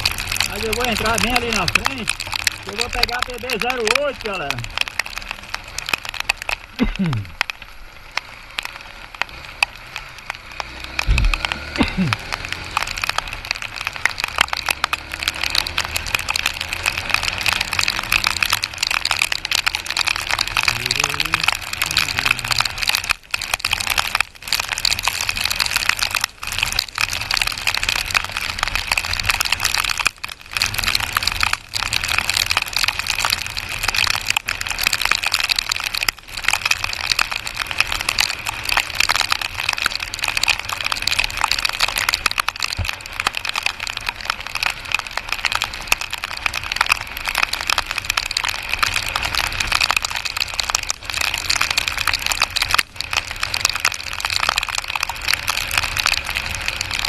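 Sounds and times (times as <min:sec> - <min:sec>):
rain pelting microphone: 0:00.0 - 0:57.0
motorcycle engine: 0:07.9 - 0:31.7.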